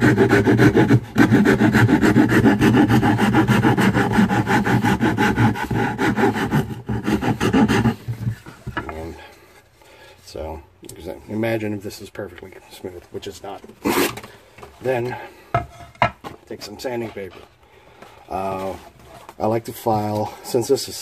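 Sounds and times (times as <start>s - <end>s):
file rasping on wood: 0.0s - 8.4s.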